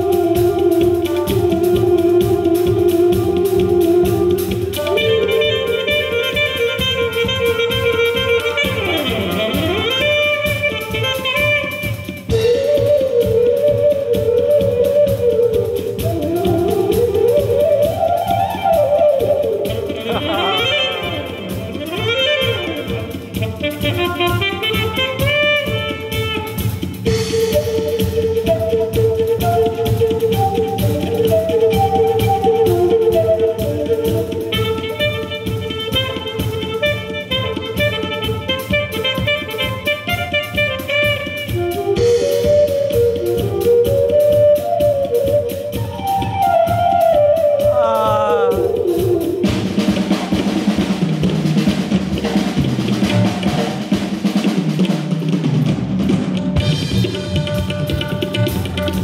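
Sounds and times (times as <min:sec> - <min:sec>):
saxophone: 0:00.0 - 0:50.3
bamboo flute: 0:00.0 - 0:50.5
drum kit: 0:00.0 - 0:59.0
tabla: 0:56.6 - 0:59.0.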